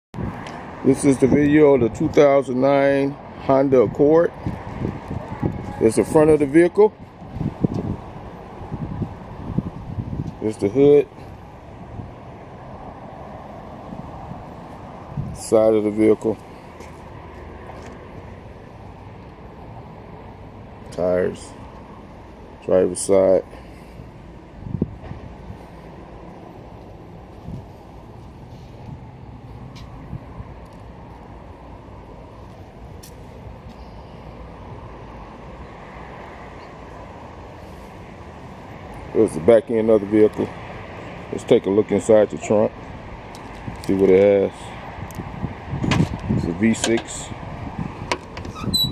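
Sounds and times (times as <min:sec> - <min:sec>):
wind noise on microphone: 0:00.2 - 0:02.2, 0:03.2 - 0:15.7, 0:23.9 - 0:33.7, 0:42.7 - 0:48.9.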